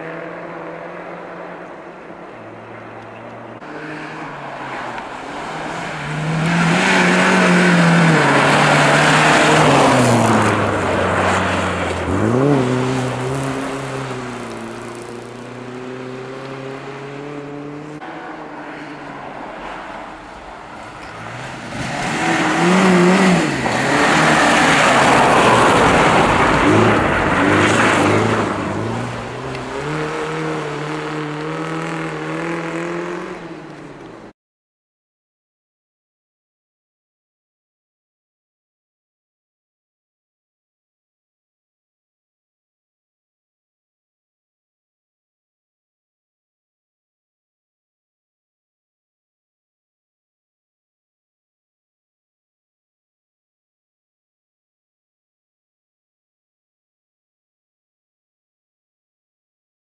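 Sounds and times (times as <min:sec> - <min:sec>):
rally car engines revving: 0:00.0 - 0:34.3.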